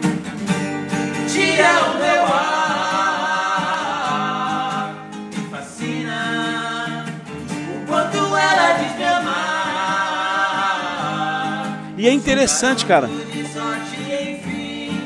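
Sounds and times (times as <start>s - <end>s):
acoustic guitar: 0.0s - 15.0s
two men singing with vibrato: 1.2s - 15.0s.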